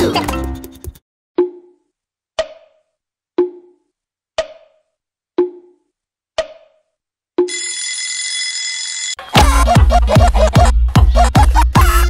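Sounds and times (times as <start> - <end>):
clock ticking: 3.4 - 4.8, 5.4 - 6.8
alarm bell ringing: 7.5 - 9.3.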